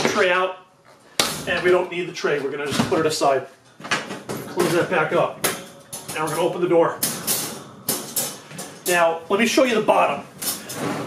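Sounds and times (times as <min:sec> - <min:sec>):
wire crate door rattling: 0:04.3 - 0:09.1.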